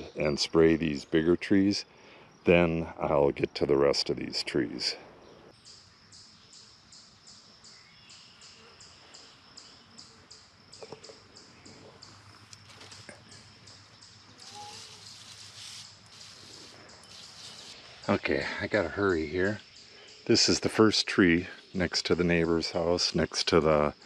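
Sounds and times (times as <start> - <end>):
sprayer hissing: 14.4 - 17.8.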